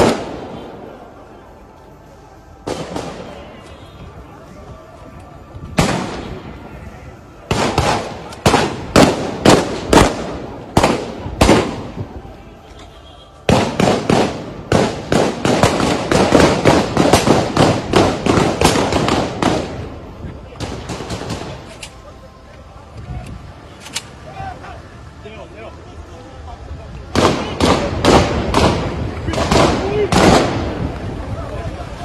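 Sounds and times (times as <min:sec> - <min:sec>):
gunshots: 0:00.0 - 0:00.6, 0:05.8 - 0:06.4, 0:07.5 - 0:12.0, 0:13.5 - 0:19.8, 0:20.6 - 0:21.8, 0:27.1 - 0:30.8.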